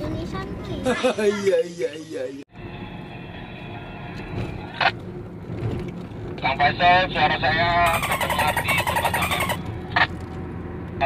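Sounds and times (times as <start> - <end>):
car cabin road and engine noise: 0.0 - 11.0
pitched tone: 7.9 - 9.7.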